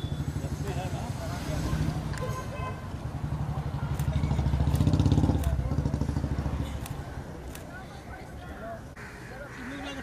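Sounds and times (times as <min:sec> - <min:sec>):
vehicle engine passing: 0:00.2 - 0:02.3, 0:02.9 - 0:07.1
faint crowd voices: 0:00.2 - 0:10.0.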